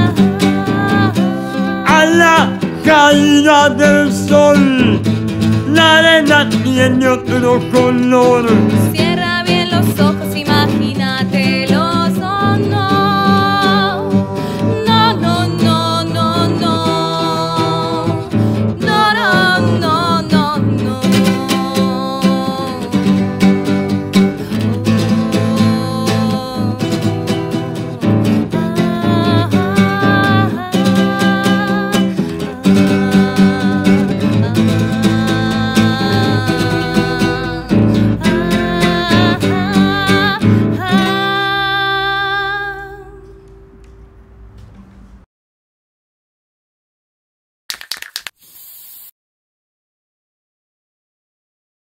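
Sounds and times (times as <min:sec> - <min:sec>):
woman singing: 0:00.0 - 0:05.0, 0:05.7 - 0:43.6
strummed acoustic guitar: 0:00.0 - 0:44.9.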